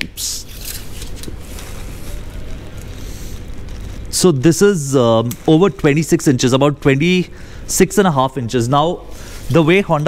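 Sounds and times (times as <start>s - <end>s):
low background rumble with hiss: 0.0s - 10.0s.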